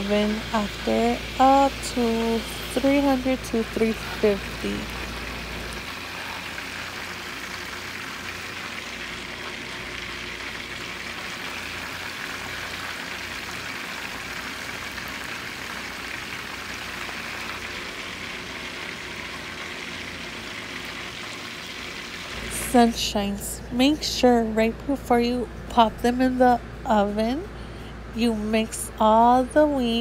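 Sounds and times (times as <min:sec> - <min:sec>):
food deep-frying in oil: 0:00.0 - 0:23.2.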